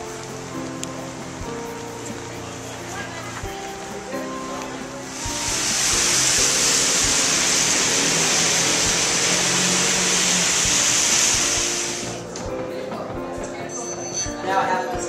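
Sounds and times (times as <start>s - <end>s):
rain-wet street hiss: 0.0s - 12.5s
music: 0.0s - 15.0s.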